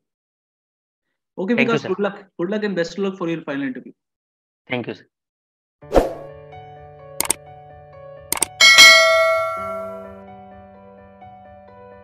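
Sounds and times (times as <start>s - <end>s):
mouse click sound effect: 7.2s - 7.4s, 8.3s - 8.6s
bright bell ding: 8.6s - 10.2s.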